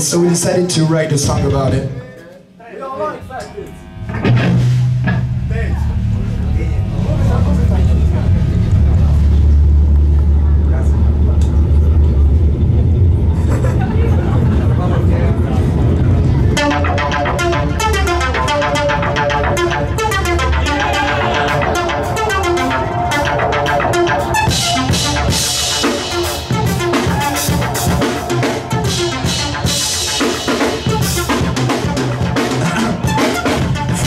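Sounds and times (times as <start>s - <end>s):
metal band playing: 2.7s - 11.3s, 15.6s - 34.0s
guitar and bass drone: 3.1s - 34.0s.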